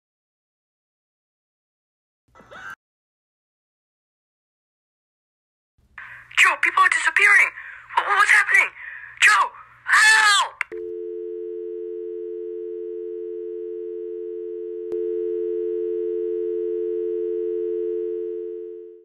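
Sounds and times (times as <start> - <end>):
telephone dial tone: 10.7 - 19.0.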